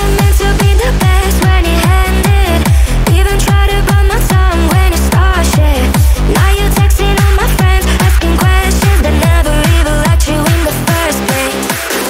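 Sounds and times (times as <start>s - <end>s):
loud dance music: 0.0s - 12.0s.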